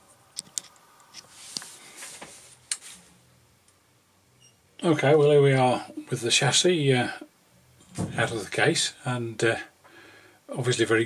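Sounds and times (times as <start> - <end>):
faint low room hum: 0.0 - 11.0.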